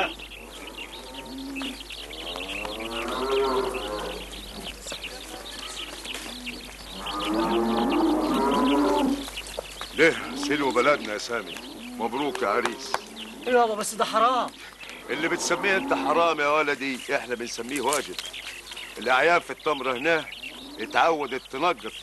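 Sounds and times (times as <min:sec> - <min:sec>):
cattle mooing: 0:00.4 - 0:04.4, 0:06.9 - 0:09.3, 0:10.0 - 0:13.8, 0:15.0 - 0:16.4.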